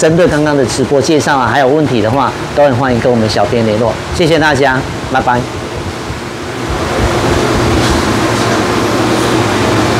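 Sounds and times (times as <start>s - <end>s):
machine hum with low drone: 0.0s - 9.9s.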